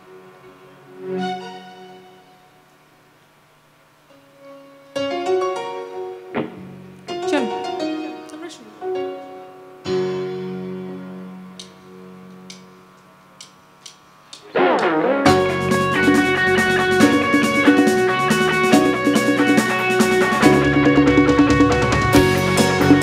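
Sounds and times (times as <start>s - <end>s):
held keyboard chord: 4.0s - 23.0s
full band playing: 14.6s - 23.0s.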